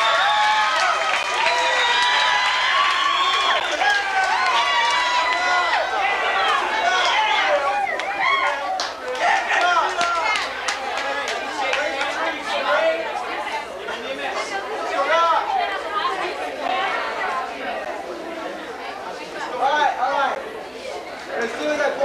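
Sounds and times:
teenagers talking: 3.4s - 22.0s.

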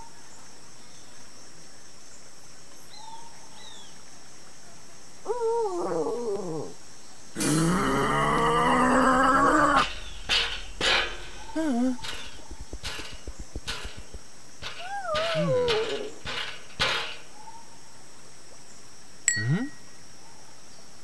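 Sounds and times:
cartoon dinosaur moaning cry: 7.4s - 10.0s
dinosaur roar: 7.4s - 12.9s.

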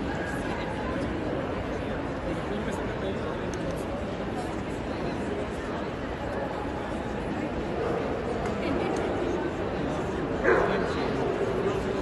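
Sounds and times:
chatter of people in a hall: 0.0s - 12.0s
dog barking: 10.4s - 10.8s.

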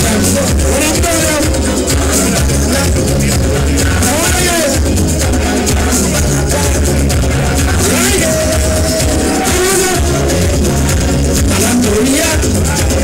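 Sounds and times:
live calypso music: 0.0s - 13.0s
man singing into a microphone: 0.0s - 13.0s.

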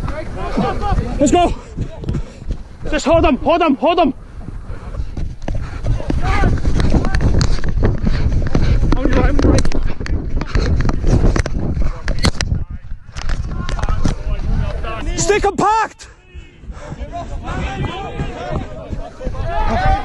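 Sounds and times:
wind rumbling on microphone: 0.0s - 15.5s, 16.2s - 20.0s
voices calling out: 13.7s - 20.0s.

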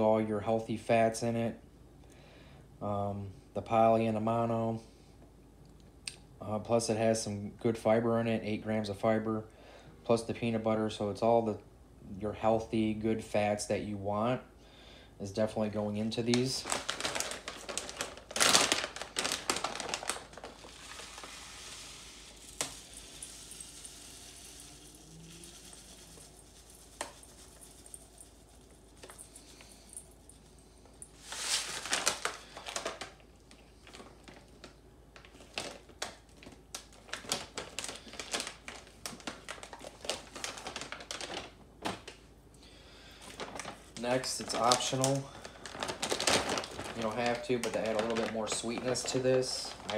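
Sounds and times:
plastic pouch crinkling: 16.0s - 30.0s, 31.2s - 42.2s, 43.2s - 49.9s
small clicks and crackles from bag: 16.2s - 30.4s, 31.4s - 42.2s, 43.2s - 49.9s
seeds pouring into metal bowl: 20.5s - 29.7s, 31.2s - 31.8s.

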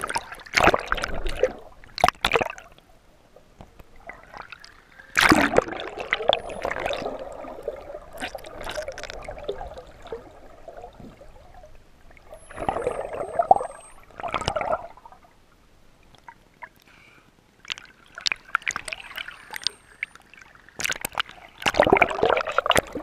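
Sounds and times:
water rushing and sloshing: 0.0s - 16.7s.

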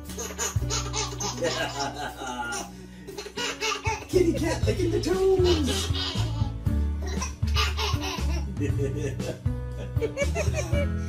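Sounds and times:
baby laughing: 0.0s - 9.4s
background music with low notes: 0.0s - 11.0s.

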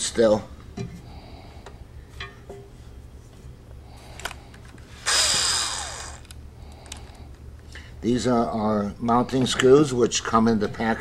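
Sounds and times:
cordless drill whine: 4.9s - 6.4s.

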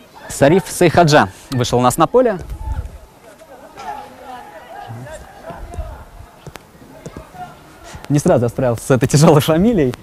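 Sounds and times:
faint voices calling: 0.0s - 8.8s.

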